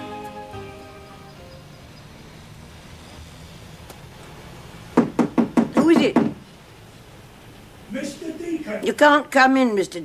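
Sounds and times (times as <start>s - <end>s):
knocking on a door: 5.0s - 6.4s.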